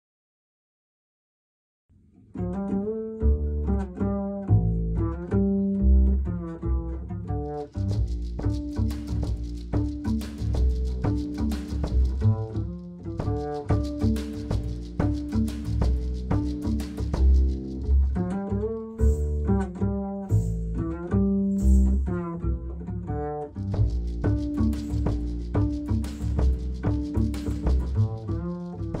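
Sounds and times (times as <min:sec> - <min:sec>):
plucked double bass: 0:02.0 - 0:29.0
light drum and cymbal strokes: 0:08.0 - 0:17.8, 0:21.6 - 0:22.1, 0:23.7 - 0:29.0.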